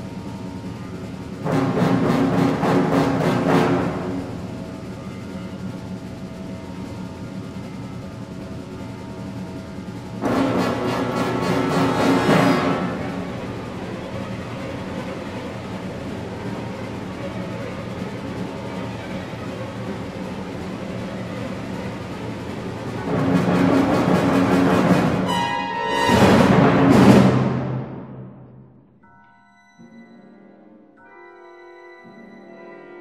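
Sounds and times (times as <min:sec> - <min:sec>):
full orchestra music: 0:00.0 - 0:28.6.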